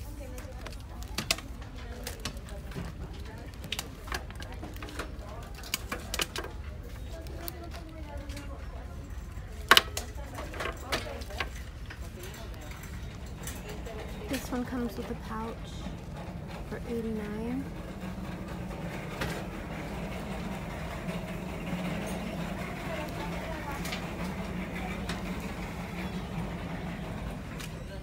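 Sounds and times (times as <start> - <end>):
indistinct voices: 0.0 - 28.0
store background noise: 0.0 - 28.0.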